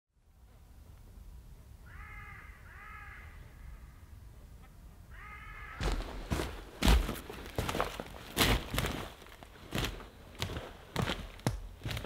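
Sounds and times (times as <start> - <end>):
crow cawing: 1.8 - 4.0, 5.1 - 6.4.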